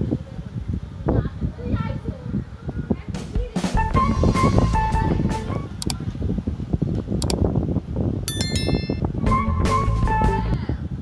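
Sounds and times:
wind buffeting microphone: 0.0s - 11.0s
sharp clicks: 5.8s - 6.0s, 7.2s - 7.4s
bright chiming ding: 8.3s - 9.1s.

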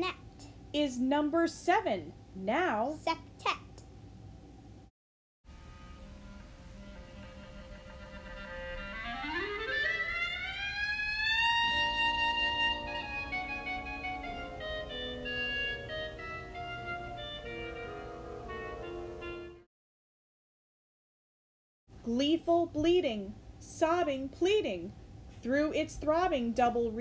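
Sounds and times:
clarinet playing: 5.6s - 19.7s.

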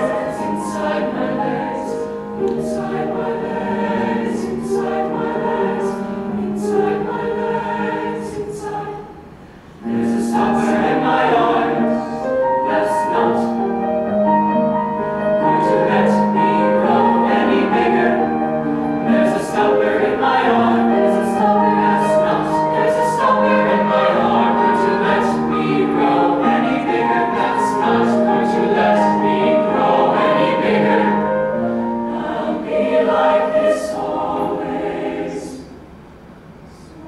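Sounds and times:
youth choir singing: 0.0s - 13.8s, 15.3s - 35.9s.

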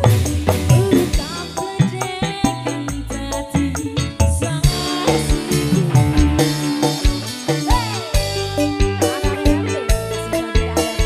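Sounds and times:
live band music: 0.0s - 11.0s
woman singing into microphone: 0.6s - 8.2s.

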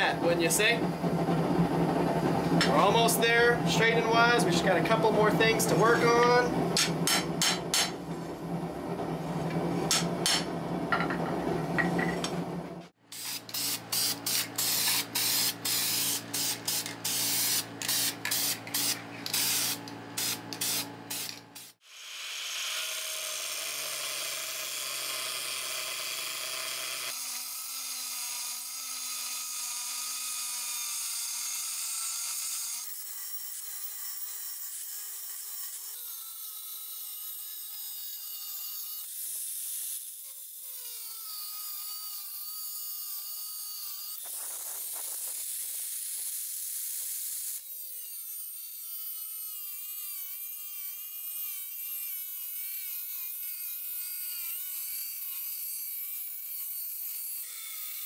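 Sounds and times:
angle grinder cutting steel: 0.0s - 8.3s, 13.1s - 58.0s
steady hum: 0.0s - 18.0s.

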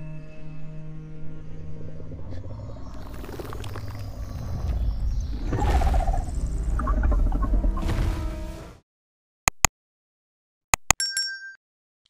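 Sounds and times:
deep rumbling dinosaur growl: 1.9s - 8.6s.

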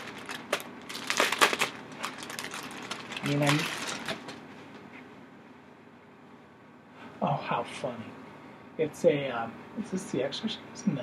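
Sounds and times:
packaging rustling: 0.0s - 4.4s.

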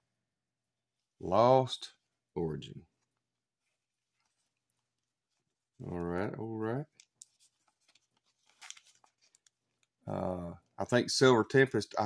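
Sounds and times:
foil wrappers crinkling: 7.9s - 9.9s.

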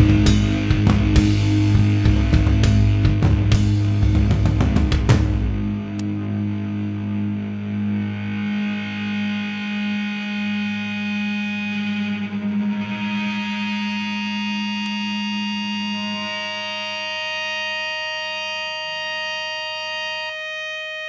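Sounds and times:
electric guitar feedback: 0.0s - 21.0s.

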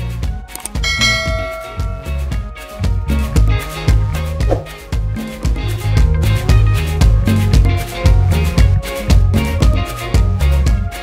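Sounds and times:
upbeat funky music: 0.0s - 11.0s
bell-like chime: 0.8s - 3.3s.

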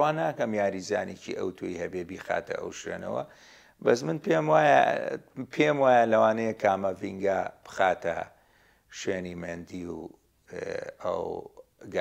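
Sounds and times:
man speaking: 0.0s - 12.0s
intake of breath: 3.3s - 3.8s, 8.4s - 8.9s.

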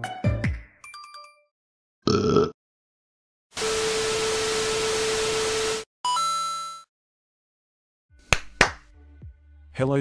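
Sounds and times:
sharp hand claps: 8.2s - 8.9s.

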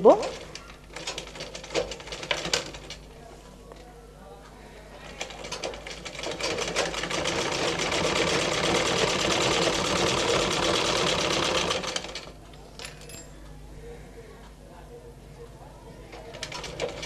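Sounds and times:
sewing machine stitching: 0.1s - 3.0s, 5.0s - 12.3s, 16.1s - 17.0s.

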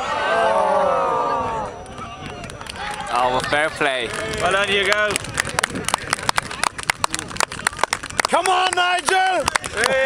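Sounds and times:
faint voices: 0.0s - 10.0s
small crowd clapping: 1.8s - 10.0s.

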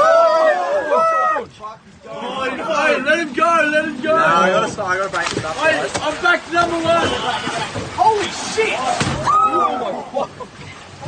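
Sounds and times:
onlookers shouting excitedly: 0.0s - 1.5s.

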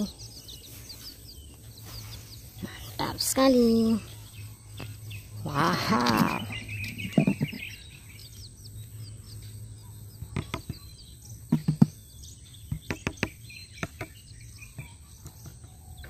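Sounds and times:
chicks peeping: 0.0s - 16.0s.

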